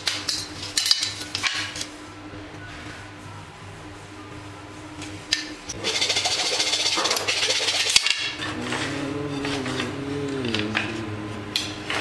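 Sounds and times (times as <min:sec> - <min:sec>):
hand saw cutting wood: 0:05.8 - 0:10.0.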